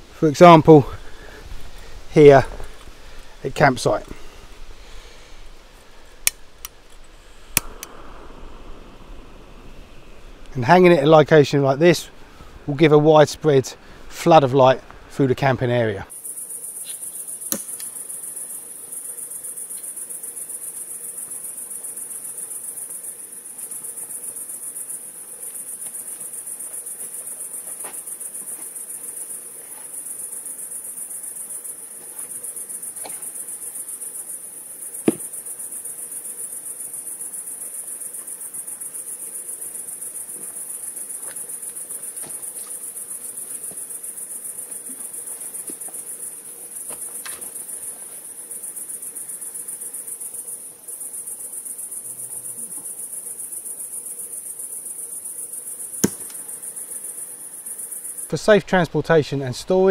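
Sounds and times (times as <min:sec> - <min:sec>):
crickets chirping: 0:00.0 - 0:59.9
piezo igniter clicking: 0:06.2 - 0:08.0.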